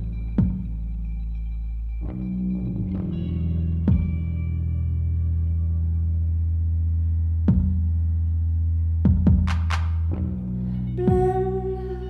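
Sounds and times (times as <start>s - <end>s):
electric bass notes ringing: 0.0s - 12.0s.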